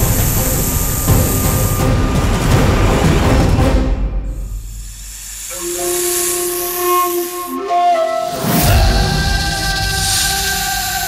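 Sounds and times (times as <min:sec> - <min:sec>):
giant snake hissing: 0:04.3 - 0:11.0
held music notes: 0:05.4 - 0:11.0.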